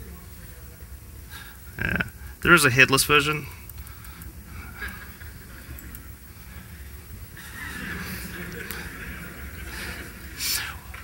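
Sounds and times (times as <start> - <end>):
steady low hum: 0.0 - 11.0
faint clicks: 3.6 - 6.2.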